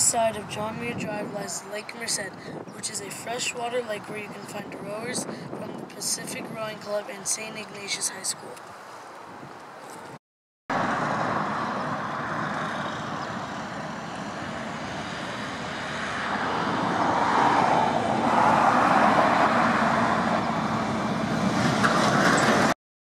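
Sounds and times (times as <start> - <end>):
car tyre and wind rush: 0.0 - 3.4, 4.3 - 6.8, 8.6 - 22.7.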